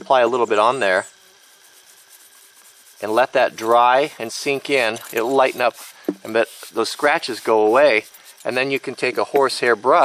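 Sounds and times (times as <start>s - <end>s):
fingers rubbing leather: 1.4s - 8.9s.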